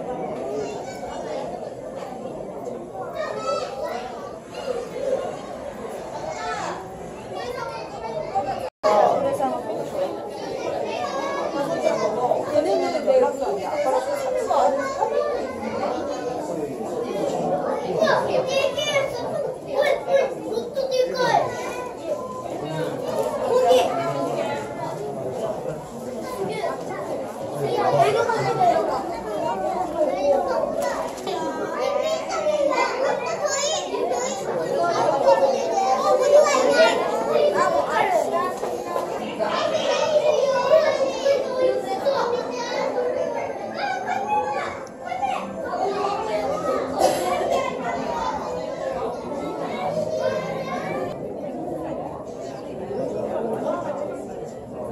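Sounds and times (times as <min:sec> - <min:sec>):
children's voices: 0:00.0 - 0:54.9
crowd babble: 0:00.0 - 0:54.9.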